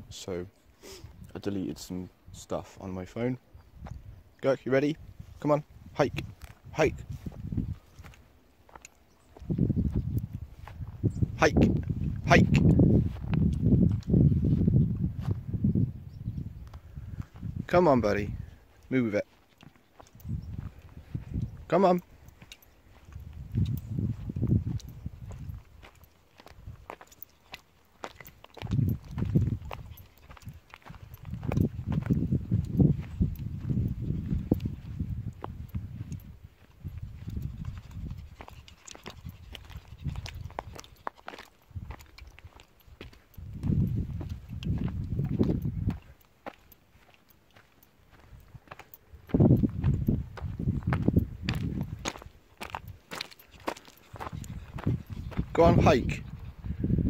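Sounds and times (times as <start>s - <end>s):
footsteps crunching on stones: 6.2s - 11.7s, 18.7s - 56.6s.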